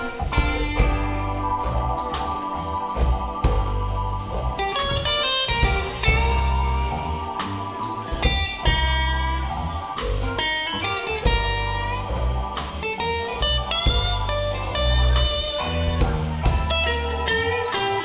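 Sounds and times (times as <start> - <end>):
drum kit: 0.0 - 18.0
electric guitar lead lines: 0.0 - 18.0
heavy bass line: 0.0 - 18.0
keyboards: 0.0 - 18.0.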